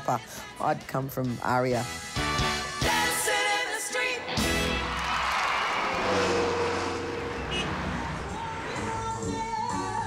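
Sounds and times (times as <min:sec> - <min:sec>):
audience applauding and cheering: 0:04.4 - 0:06.8.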